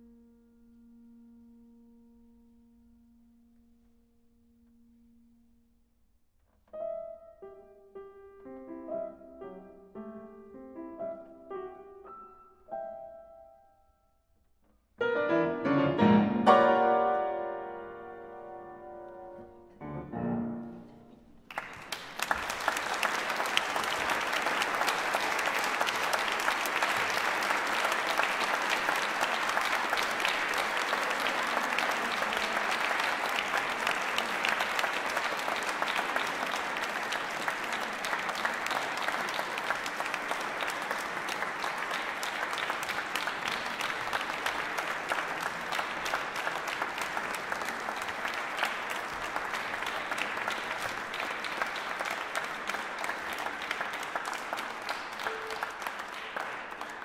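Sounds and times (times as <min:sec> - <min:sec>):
audience applauding: 0:21.4 - 0:57.0.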